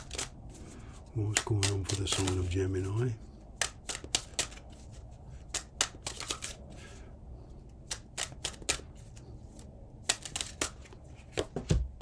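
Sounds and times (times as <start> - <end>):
cards shuffling snaps: 0.0 - 3.0, 3.6 - 7.0, 7.7 - 11.8.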